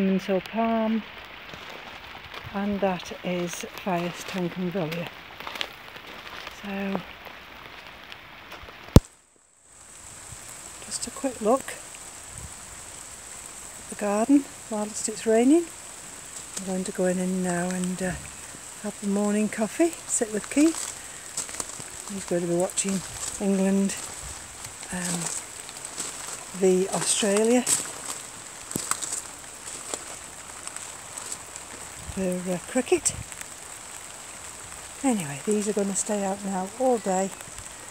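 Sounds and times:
steady rain hissing: 0.0 - 37.9.

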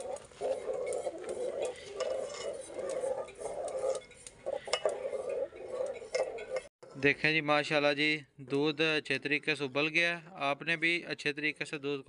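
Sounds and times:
spoon clinking in metal pot: 0.0 - 6.7
milk boiling: 0.0 - 7.1.

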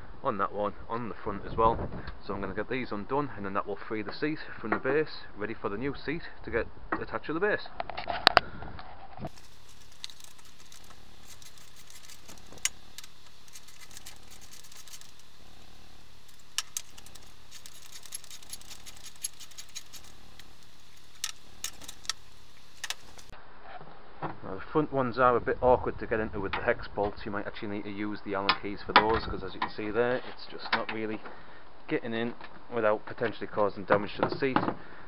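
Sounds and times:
low background noise: 0.0 - 35.0.

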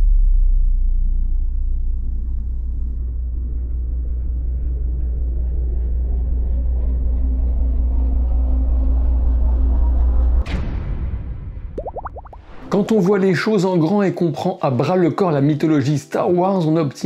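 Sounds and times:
deep cinematic rumble: 0.0 - 13.4.

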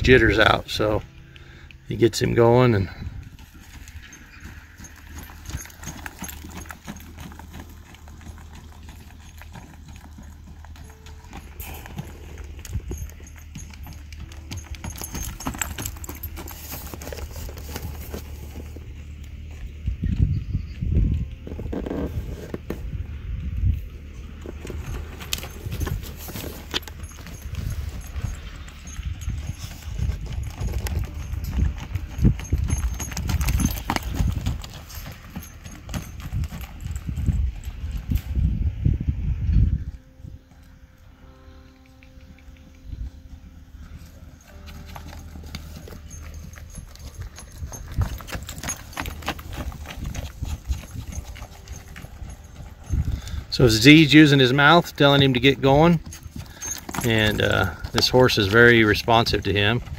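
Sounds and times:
horse hooves on soft dirt: 0.0 - 59.9.

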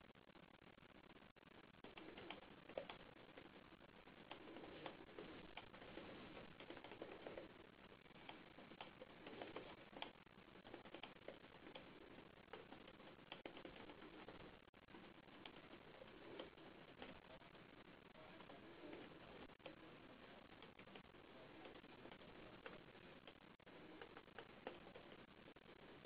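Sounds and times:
faint line noise murmuring: 0.0 - 26.0
soft clicks: 1.8 - 26.0.

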